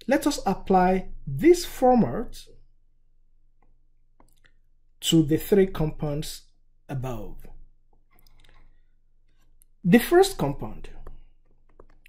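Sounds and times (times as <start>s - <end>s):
person speaking: 0.0s - 2.5s, 5.0s - 8.4s, 9.7s - 12.0s.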